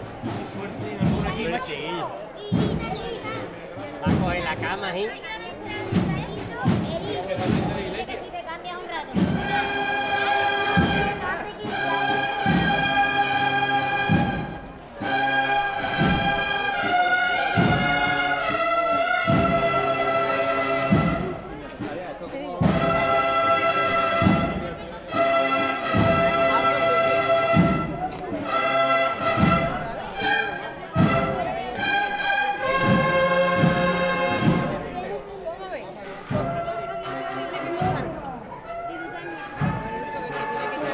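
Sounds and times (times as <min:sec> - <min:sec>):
drum beats: 0:00.0 - 0:40.9
cornet chords: 0:09.2 - 0:22.0, 0:22.6 - 0:40.9.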